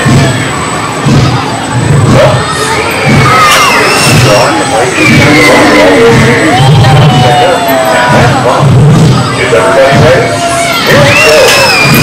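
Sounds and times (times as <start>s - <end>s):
low pulsing: 0.0s - 10.5s
children screaming and shouting: 0.0s - 12.0s
high-pitched shrieks: 2.3s - 8.6s, 9.4s - 12.0s.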